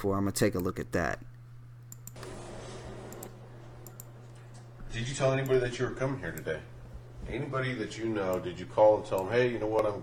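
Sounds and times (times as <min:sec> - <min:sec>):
low electrical hum: 0:00.0 - 0:10.0
computer controls clicking: 0:00.4 - 0:00.8, 0:01.8 - 0:02.4, 0:03.0 - 0:04.5, 0:05.3 - 0:05.7, 0:08.2 - 0:08.5, 0:09.1 - 0:10.0.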